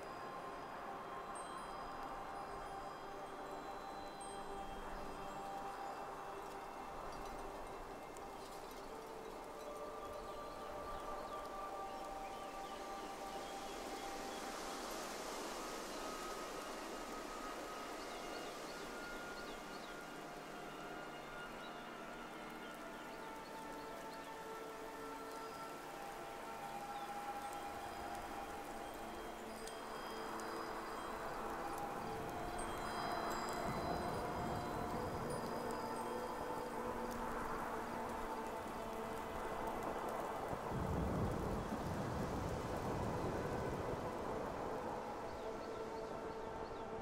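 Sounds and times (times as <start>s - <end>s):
ambient chime-like music: 0.0s - 47.0s
night wind: 0.0s - 47.0s.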